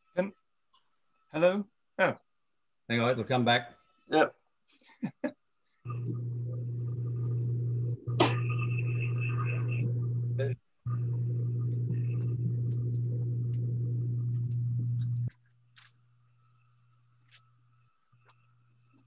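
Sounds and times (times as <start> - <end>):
loud low hum: 5.9 - 15.3.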